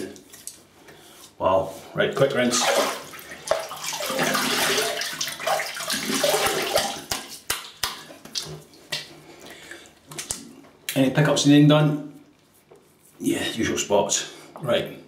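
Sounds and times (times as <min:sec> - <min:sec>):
water splashing in a sink: 0:02.4 - 0:09.1.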